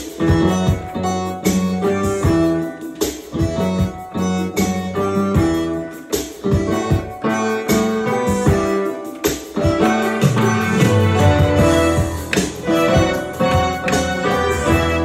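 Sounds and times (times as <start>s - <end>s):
digital keyboard chords: 0.0s - 15.0s.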